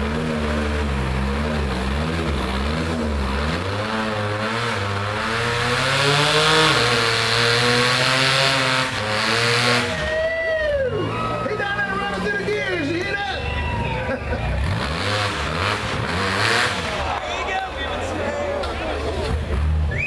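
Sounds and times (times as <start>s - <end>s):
engine revving: 0.0s - 17.3s.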